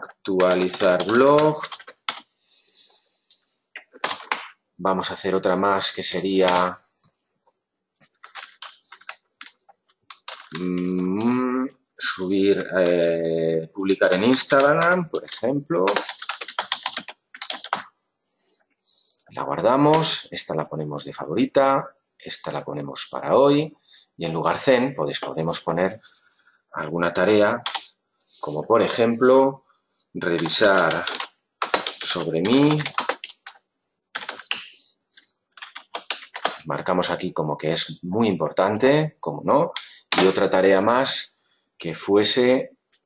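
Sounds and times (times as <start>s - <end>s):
typing on computer keyboard: 0.0s - 2.3s, 8.2s - 10.9s, 14.1s - 17.9s, 27.6s - 27.9s, 30.3s - 34.8s, 35.5s - 36.7s, 39.8s - 40.4s.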